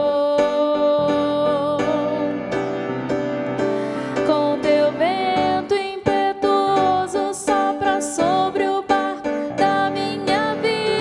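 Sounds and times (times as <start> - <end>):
piano chords: 0.0 - 11.0
woman singing religious song: 4.3 - 11.0.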